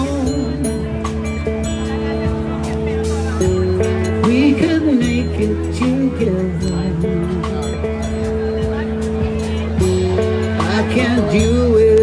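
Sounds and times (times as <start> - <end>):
rock band playing a slow ballad: 0.0 - 12.0.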